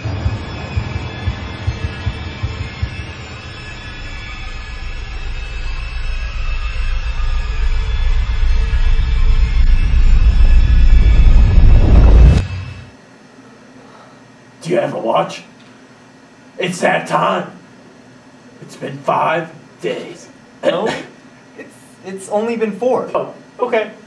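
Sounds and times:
deep rumbling drone: 0:00.0 - 0:12.9
low thumps: 0:07.5 - 0:12.9.

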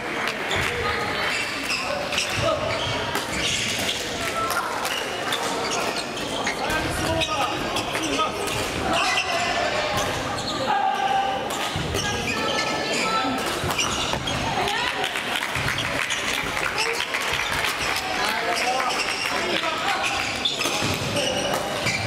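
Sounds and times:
many voices echoing: 0:00.0 - 0:22.0.

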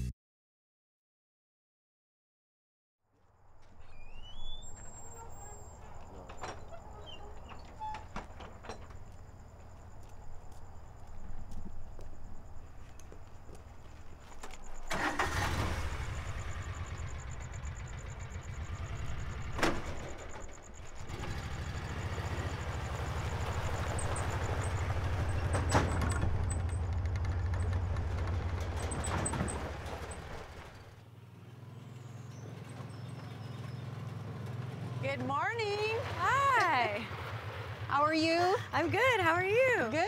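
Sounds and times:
utility vehicle engine running: 0:03.5 - 0:40.0.

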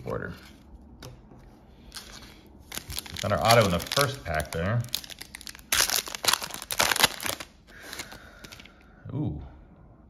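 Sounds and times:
foil pack crinkling and tearing: 0:01.9 - 0:08.7.

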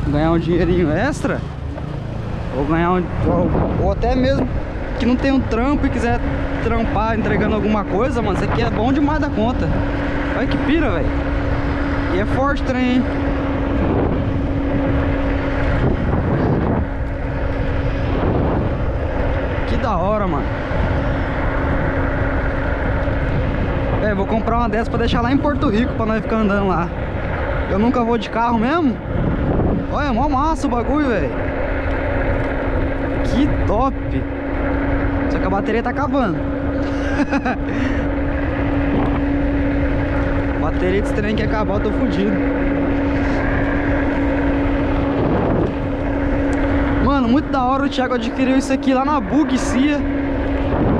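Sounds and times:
electric motor hum: 0:00.0 - 0:50.9
wind rushing over microphone: 0:00.0 - 0:50.9.

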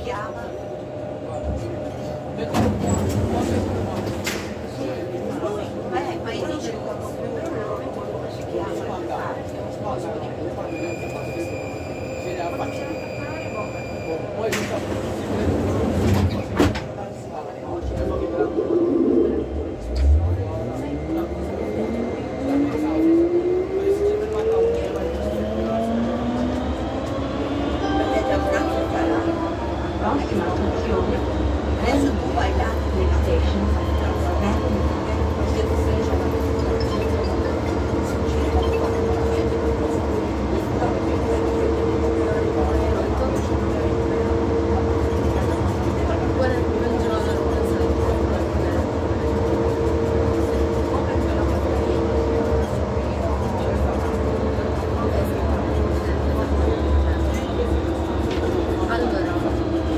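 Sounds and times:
train motor whine and rumble: 0:14.0 - 0:59.9.

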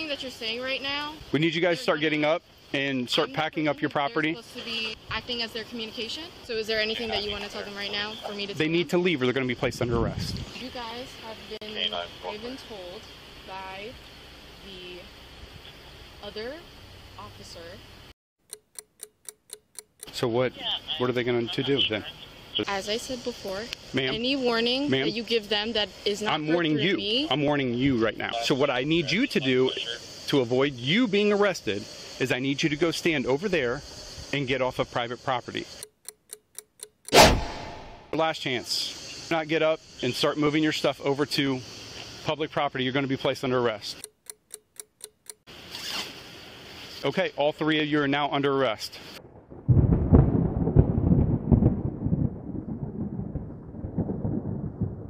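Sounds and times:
clock ticking: 0:18.4 - 0:20.2, 0:35.8 - 0:37.2, 0:44.0 - 0:45.4
zipper being pulled open: 0:45.7 - 0:46.2.

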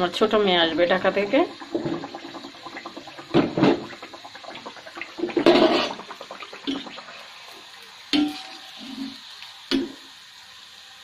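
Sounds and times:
batter sizzling in hot oil: 0:00.0 - 0:11.0
oil bubbling crackle: 0:00.0 - 0:11.0.

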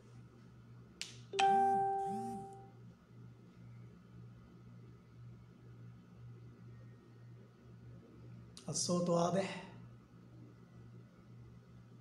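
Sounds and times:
chime ringing: 0:01.4 - 0:02.7.

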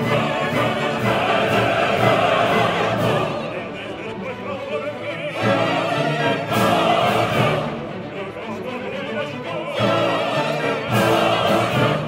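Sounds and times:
operatic singing with chorus: 0:00.0 - 0:12.0
symphony orchestra: 0:00.0 - 0:12.0.

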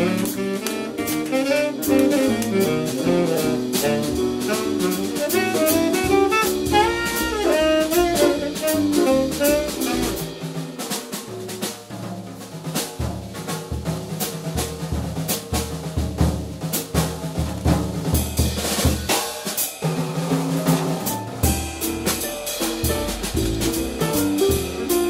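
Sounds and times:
walking bass line: 0:00.0 - 0:10.3, 0:21.4 - 0:25.0
drum kit cymbal and snare: 0:00.0 - 0:25.0
kick drum hits: 0:21.4 - 0:24.9.

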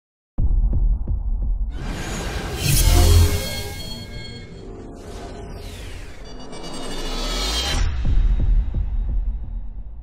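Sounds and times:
bright whooshing swell: 0:02.1 - 0:07.8.

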